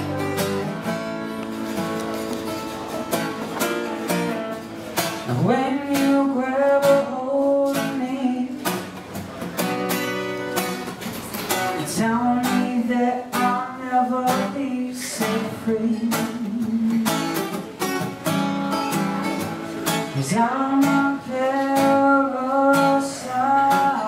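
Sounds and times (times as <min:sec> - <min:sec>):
acoustic guitar strumming: 0:00.0 - 0:24.0
man singing: 0:05.2 - 0:08.9, 0:11.7 - 0:17.5, 0:20.0 - 0:24.0.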